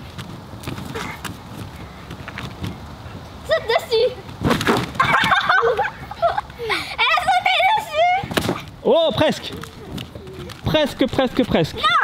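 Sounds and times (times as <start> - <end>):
feet thumping on trampoline: 0.0 - 2.9, 4.2 - 6.1.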